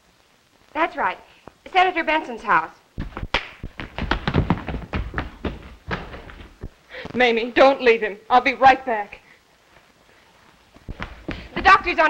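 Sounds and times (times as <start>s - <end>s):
scuffle thuds and knocks: 3.0s - 6.8s, 10.8s - 12.0s.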